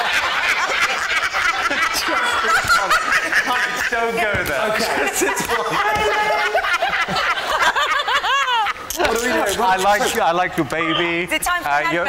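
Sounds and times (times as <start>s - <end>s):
people laughing: 0.0s - 10.6s
people talking: 1.7s - 7.0s, 9.0s - 12.0s.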